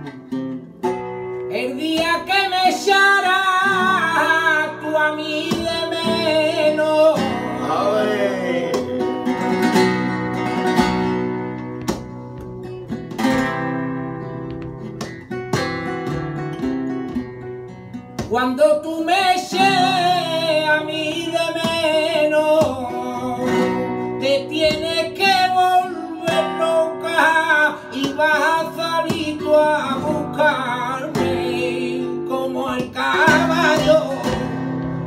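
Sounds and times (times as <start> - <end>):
flamenco guitar strumming: 0.0 - 35.0
man singing flamenco: 1.4 - 11.4, 18.2 - 35.0.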